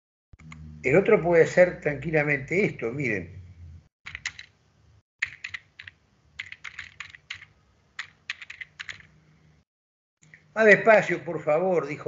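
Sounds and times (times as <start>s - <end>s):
computer keyboard key clicks: 4.1s - 4.5s, 5.2s - 9.1s.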